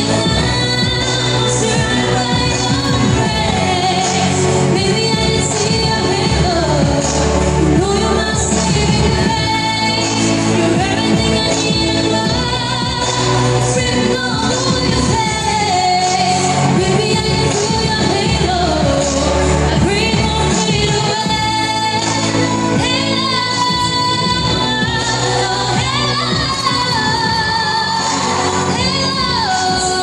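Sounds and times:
backing music: 0.0s - 30.0s
woman singing into microphone: 0.0s - 30.0s.

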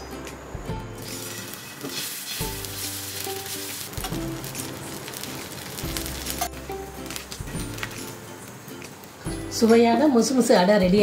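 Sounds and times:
background music with bass: 0.0s - 1.4s, 5.8s - 8.5s
batter sizzling on hot iron: 1.0s - 9.4s.

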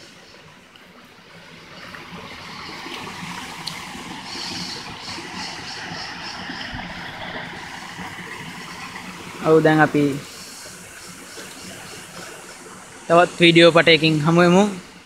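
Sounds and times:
rushing river water: 0.0s - 15.0s.

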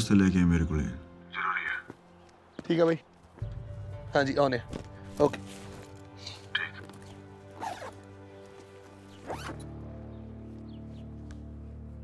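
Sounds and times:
film score music: 0.0s - 12.0s
bag zipper being pulled: 7.6s - 8.0s, 9.2s - 9.6s.

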